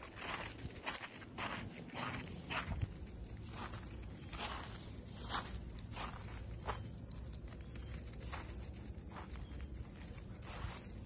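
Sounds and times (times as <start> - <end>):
footsteps in crusted snow: 0.0 - 11.0.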